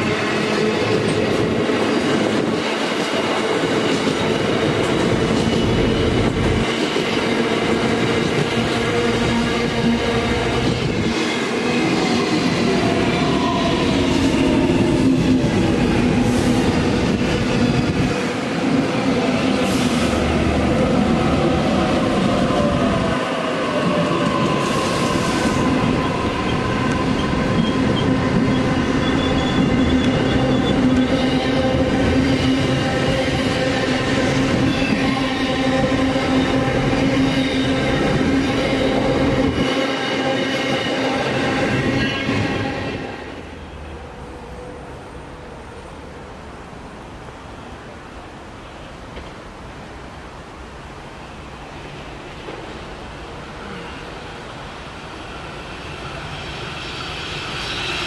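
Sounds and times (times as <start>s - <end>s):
freight train rumbling past: 0.0s - 58.0s.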